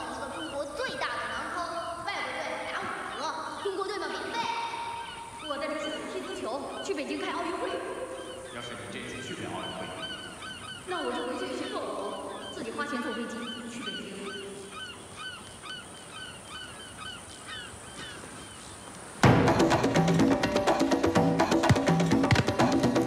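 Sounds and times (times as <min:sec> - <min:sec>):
birds honking calls: 0:00.0 - 0:23.0
percussive music with wood blocks: 0:19.2 - 0:23.0.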